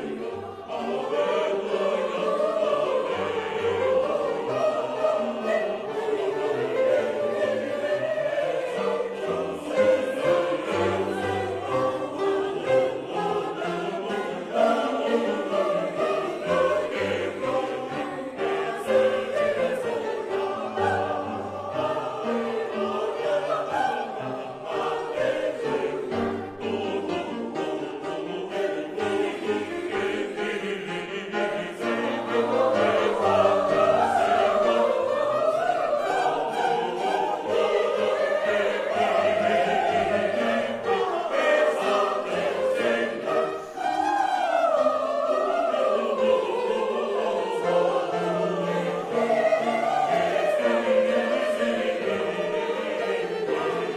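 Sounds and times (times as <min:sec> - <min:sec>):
church choir singing: 0:00.0 - 0:53.9.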